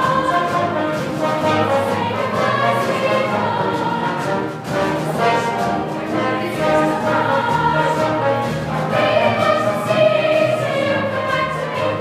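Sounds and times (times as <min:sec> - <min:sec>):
chorus singing show tune: 0:00.0 - 0:12.0
instrumental accompaniment: 0:00.0 - 0:12.0.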